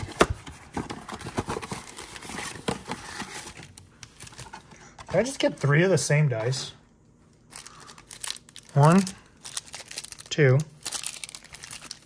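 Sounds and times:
foil packs crinkling: 0:07.5 - 0:12.0.

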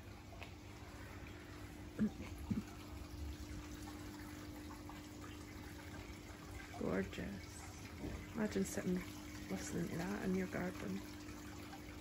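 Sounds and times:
steady low hum: 0:00.0 - 0:12.0
water trickling into trough: 0:00.0 - 0:12.0.

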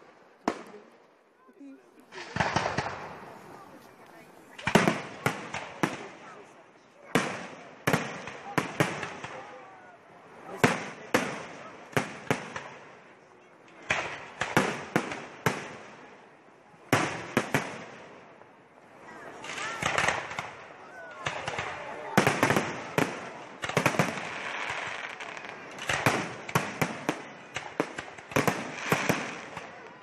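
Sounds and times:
fireworks bangs: 0:02.0 - 0:13.1, 0:13.7 - 0:16.2, 0:16.9 - 0:18.2, 0:19.0 - 0:30.0.

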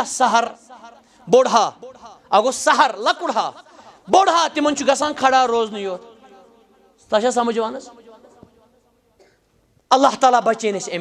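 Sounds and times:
man speaking: 0:00.0 - 0:08.4, 0:09.9 - 0:11.0.

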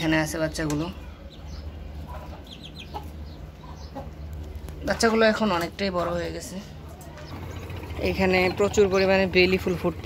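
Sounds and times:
chickens clucking: 0:00.0 - 0:10.0
low steady hum: 0:00.0 - 0:10.0.

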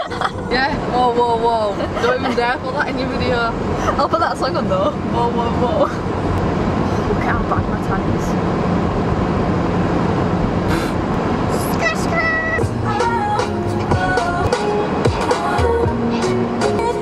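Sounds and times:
car engine rumble: 0:00.0 - 0:17.0
road noise: 0:00.0 - 0:17.0
pop song with singing: 0:11.6 - 0:17.0.

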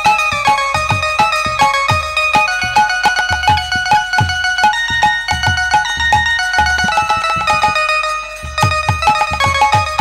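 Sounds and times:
hand drum strokes: 0:00.0 - 0:10.0
plucked string melody: 0:00.0 - 0:10.0.

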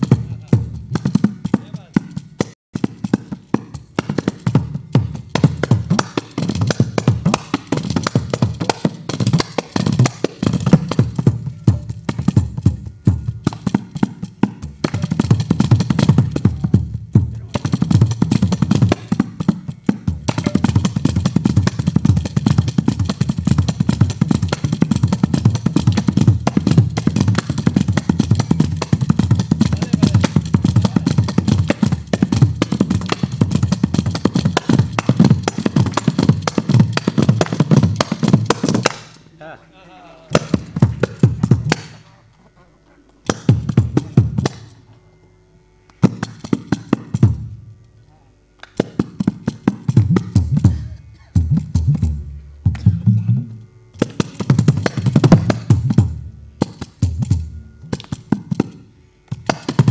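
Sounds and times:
frame drum with jingles: 0:00.0 - 0:39.3, 0:40.2 - 0:42.0, 0:43.3 - 0:44.8, 0:46.0 - 0:47.6, 0:48.7 - 0:59.9
percussion ensemble playing: 0:00.0 - 0:42.0, 0:43.2 - 0:44.9, 0:46.0 - 0:47.6, 0:48.6 - 0:59.9.

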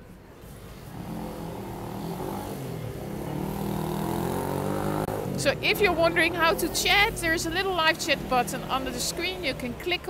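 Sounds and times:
vehicle engine approaching: 0:00.5 - 0:09.8.

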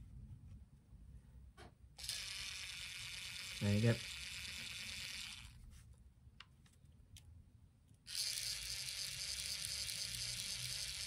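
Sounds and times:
point motor whirring: 0:02.0 - 0:05.6, 0:08.1 - 0:11.0.

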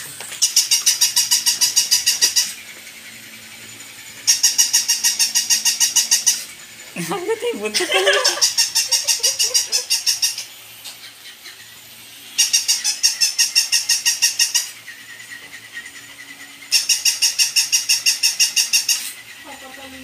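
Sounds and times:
toy high-pitched electronic chatter: 0:00.4 - 0:03.3, 0:03.9 - 0:20.0.

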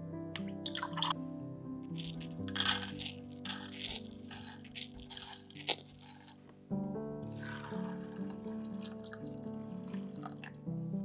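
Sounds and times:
background music: 0:00.0 - 0:11.0
lentils pattering into saucepan: 0:00.6 - 0:01.2, 0:01.9 - 0:06.5.

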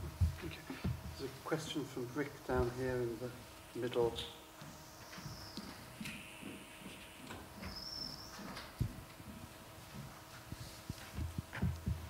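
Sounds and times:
thin high whine: 0:01.4 - 0:09.0.

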